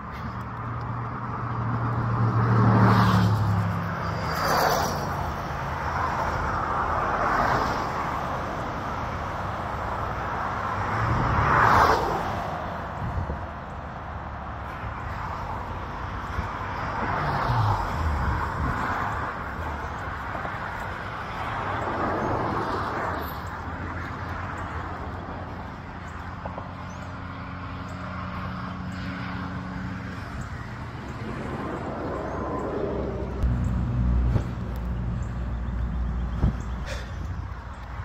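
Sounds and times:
road traffic passing: 0:00.0 - 0:38.0.

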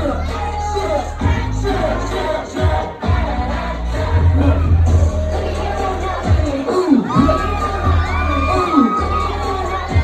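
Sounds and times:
crowd shouting and cheering: 0:00.0 - 0:10.0
dance music with heavy bass: 0:00.0 - 0:10.0.

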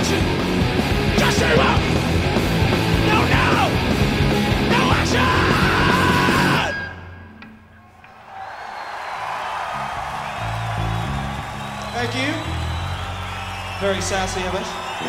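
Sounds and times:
rock band playing punk: 0:00.0 - 0:07.1
crowd noise: 0:00.0 - 0:15.0.

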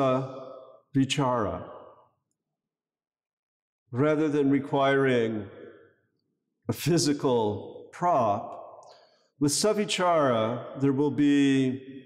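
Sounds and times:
man speaking: 0:00.0 - 0:01.7, 0:03.9 - 0:05.6, 0:06.7 - 0:08.7, 0:09.4 - 0:11.8.

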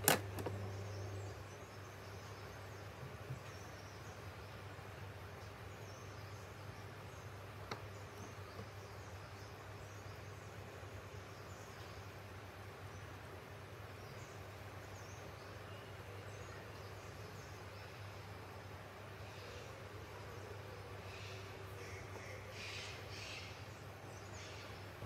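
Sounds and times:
faint hiss: 0:00.0 - 0:25.0.

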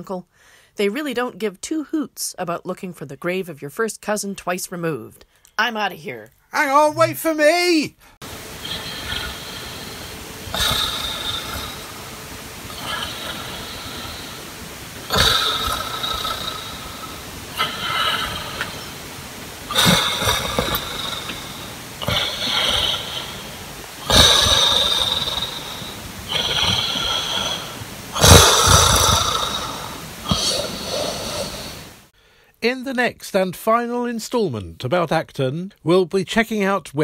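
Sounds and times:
soft breathing: 0:00.3 - 0:00.8, 0:08.0 - 0:32.6
man snoring: 0:08.2 - 0:32.1.

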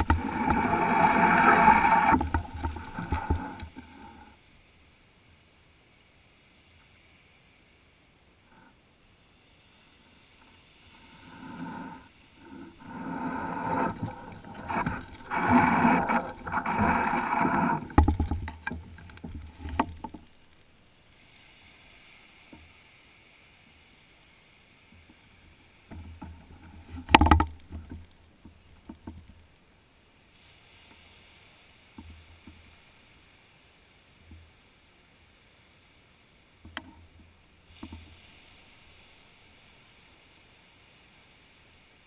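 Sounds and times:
water splash: 0:00.0 - 0:04.3, 0:12.4 - 0:20.2
sea waves washing on sand: 0:00.0 - 0:04.4, 0:09.2 - 0:20.4, 0:30.2 - 0:42.0.

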